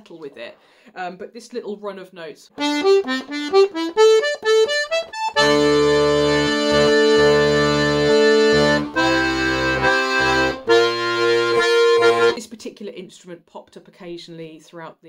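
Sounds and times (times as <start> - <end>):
button accordion playing chords: 2.6 - 12.4.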